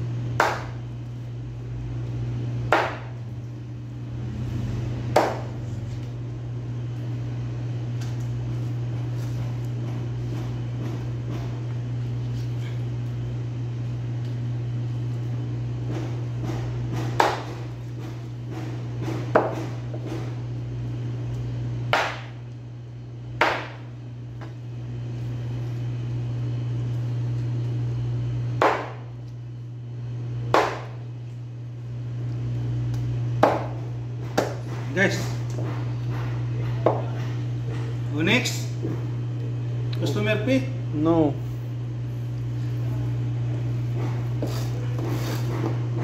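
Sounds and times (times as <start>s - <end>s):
steady low hum: 0.0s - 46.0s
cleaver chopping meat on board: 0.4s - 0.8s, 2.7s - 3.2s, 5.1s - 5.6s, 16.4s - 20.3s, 21.9s - 22.4s, 23.4s - 23.9s, 28.6s - 29.1s, 30.5s - 31.0s, 33.4s - 34.9s.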